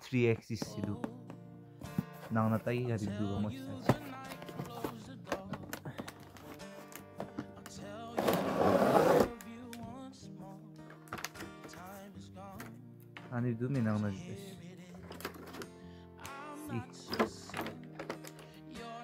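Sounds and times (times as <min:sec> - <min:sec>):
background music: 0:00.0 - 0:19.0
cardboard box and plastic handling: 0:03.7 - 0:09.4, 0:15.0 - 0:15.7, 0:17.1 - 0:18.4
plastic tray scraping out of box: 0:08.2 - 0:09.4.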